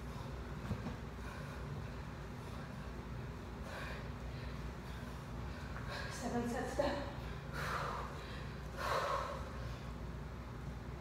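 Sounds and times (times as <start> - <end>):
woman breathing hard: 0.0 - 6.2, 7.0 - 10.1
low steady room hum: 0.0 - 11.0.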